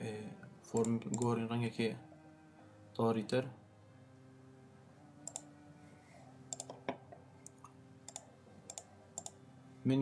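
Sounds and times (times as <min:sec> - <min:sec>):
computer mouse clicking: 0:00.8 - 0:01.3, 0:05.2 - 0:05.5, 0:06.5 - 0:06.8, 0:07.4 - 0:09.4.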